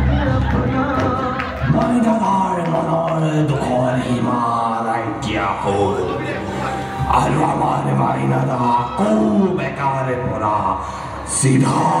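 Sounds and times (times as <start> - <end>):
music: 0.0 - 12.0
man chanting: 1.2 - 12.0.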